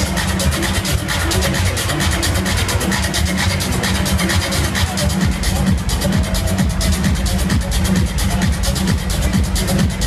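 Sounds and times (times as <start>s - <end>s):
loud techno over sound system: 0.0s - 10.0s.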